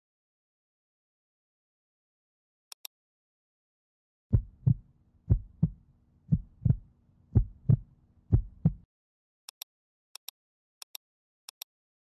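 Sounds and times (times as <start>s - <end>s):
heartbeat thumps: 4.3s - 8.8s.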